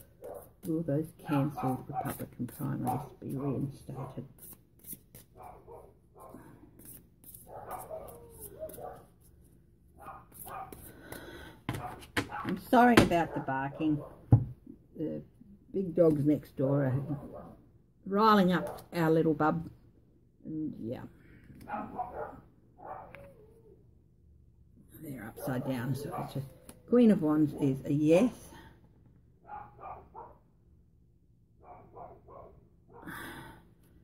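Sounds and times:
dogs barking: 0:00.2 - 0:00.5, 0:05.4 - 0:06.4, 0:07.5 - 0:09.1, 0:10.0 - 0:10.8, 0:11.8 - 0:12.6, 0:17.0 - 0:17.6, 0:18.5 - 0:19.0, 0:21.6 - 0:23.3, 0:29.4 - 0:30.5, 0:31.6 - 0:33.0.

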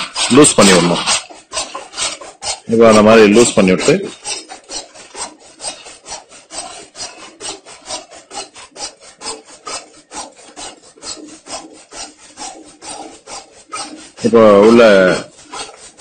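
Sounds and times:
rasping scraping strokes: 0:00.0 - 0:16.0.

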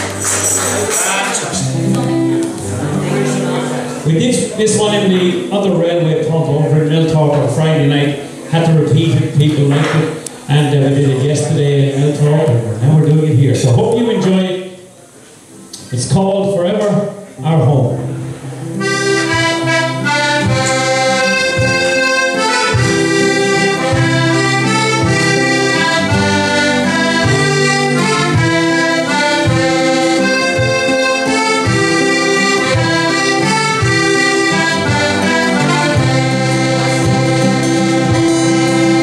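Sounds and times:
strummed acoustic guitar: 0:00.0 - 0:12.6, 0:17.9 - 0:39.0
accordion melody: 0:00.0 - 0:14.8, 0:17.9 - 0:39.0.

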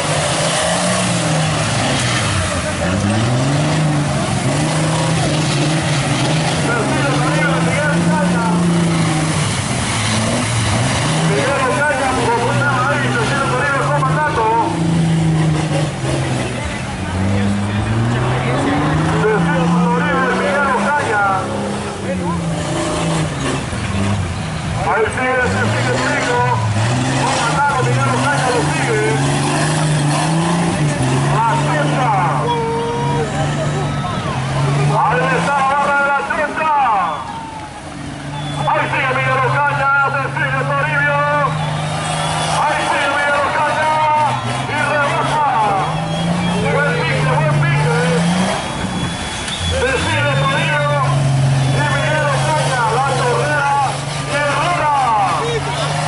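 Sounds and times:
off-road engines revving: 0:00.0 - 0:56.0.

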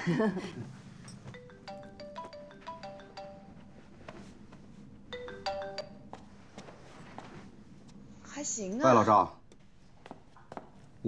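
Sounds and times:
marimba-like phone ringtone: 0:01.2 - 0:06.1.

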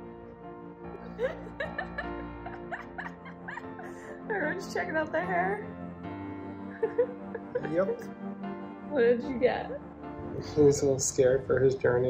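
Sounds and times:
held chords: 0:00.0 - 0:12.0.

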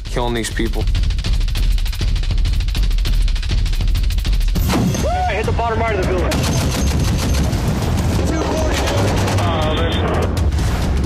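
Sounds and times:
man shouting: 0:05.0 - 0:05.6
automatic gunfire: 0:06.3 - 0:09.7.

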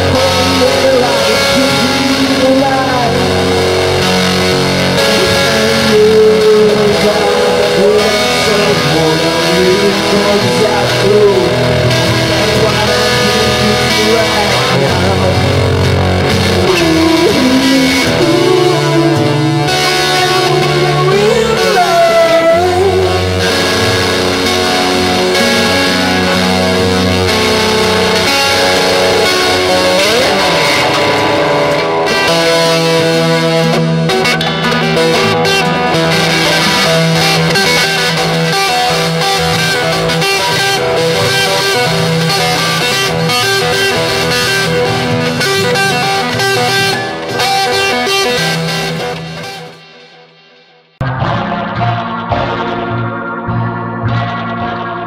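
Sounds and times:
rock music on guitars: 0:00.0 - 0:55.0.

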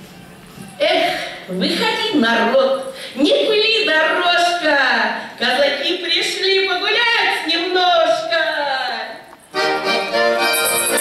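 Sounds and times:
accordion chords: 0:09.5 - 0:11.0
high rhythmic jingle: 0:09.6 - 0:11.0.

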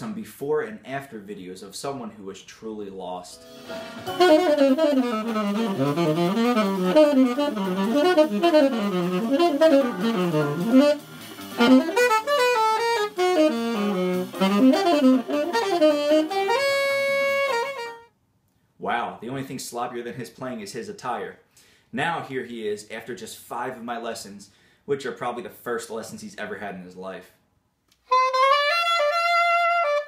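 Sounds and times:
tenor saxophone playing: 0:03.6 - 0:18.1, 0:28.0 - 0:30.0.

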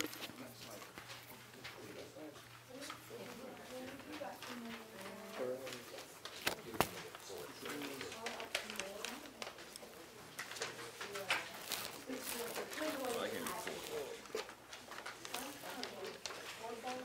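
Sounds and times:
students chattering: 0:01.7 - 0:17.0.

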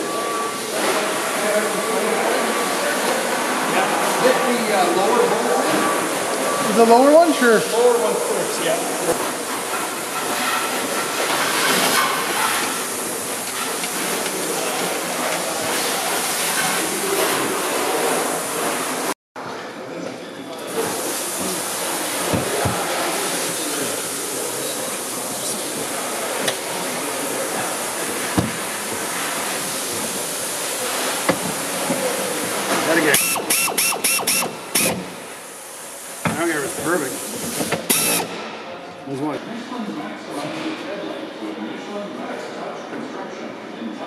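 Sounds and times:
steady hissing shop noise: 0:00.0 - 0:44.0.

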